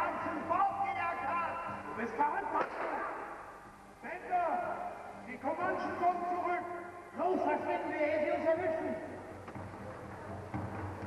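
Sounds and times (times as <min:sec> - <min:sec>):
short sharp crack: 0:02.6 - 0:03.3.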